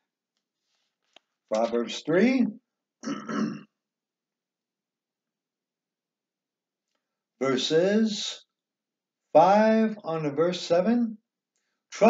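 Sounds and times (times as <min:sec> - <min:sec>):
man clearing his throat: 0:03.0 - 0:03.7.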